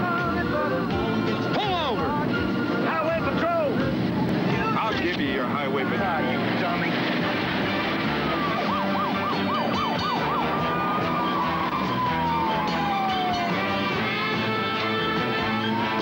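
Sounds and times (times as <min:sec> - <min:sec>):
car noise: 0:00.0 - 0:16.0
police siren: 0:06.9 - 0:16.0.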